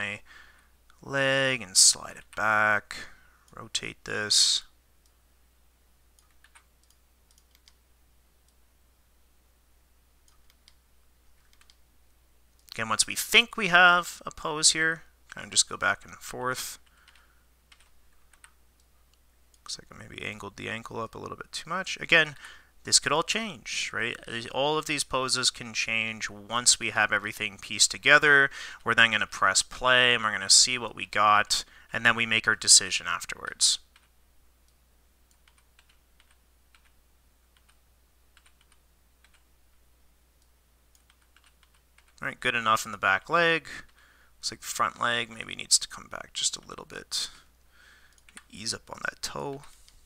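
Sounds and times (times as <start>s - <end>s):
low steady hum: 0.0s - 50.0s
computer mouse and keyboard clicks: 11.4s - 11.8s.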